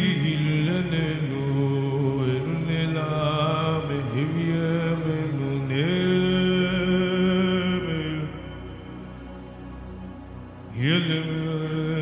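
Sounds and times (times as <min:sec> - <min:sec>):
man singing chant-like melody: 0:00.0 - 0:09.1, 0:10.7 - 0:12.0.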